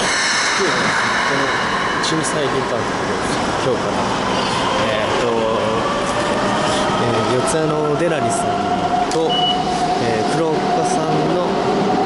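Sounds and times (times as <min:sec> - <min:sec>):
station concourse noise: 0:00.0 - 0:12.0.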